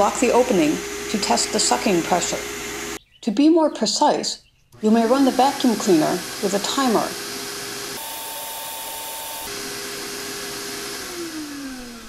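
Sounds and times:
vacuum cleaner running: 0.0s - 3.0s, 4.8s - 12.0s.

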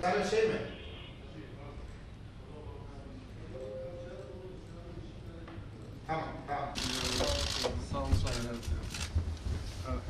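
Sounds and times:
people talking in a room: 0.0s - 10.0s.

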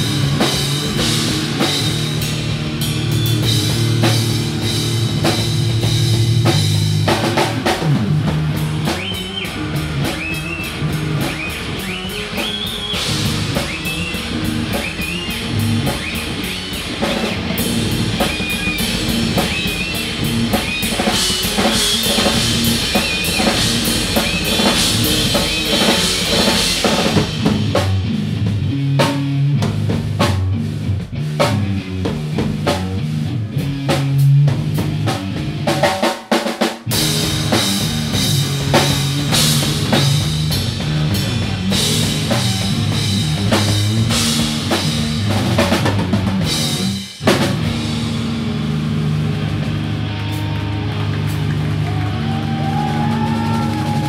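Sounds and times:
drum kit: 0.0s - 54.0s
loud electric guitar: 0.0s - 54.0s
rock band playing: 0.0s - 54.0s.

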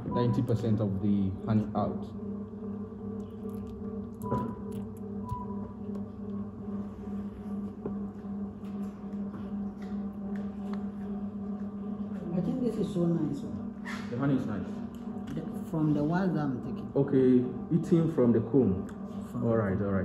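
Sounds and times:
low machine hum: 0.0s - 20.0s.

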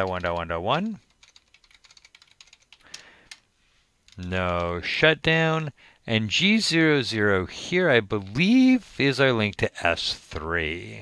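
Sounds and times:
computer keyboard typing: 0.0s - 3.4s.

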